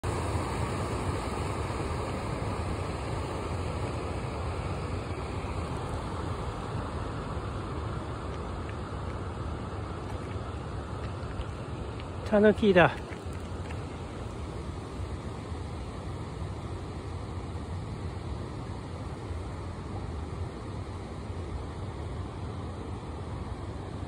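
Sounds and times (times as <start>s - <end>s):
rumbling outdoor background noise: 0.0s - 24.0s.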